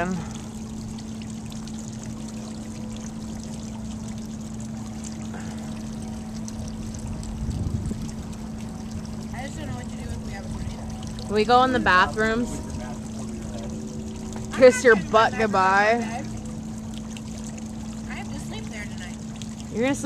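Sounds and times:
low hum: 0:00.0 - 0:20.0
water splashing in fountain: 0:00.0 - 0:20.0
low rumble: 0:05.1 - 0:17.7.

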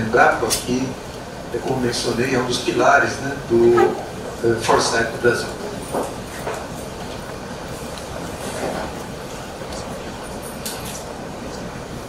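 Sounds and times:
low rumble of hall noise: 0:00.0 - 0:12.0.

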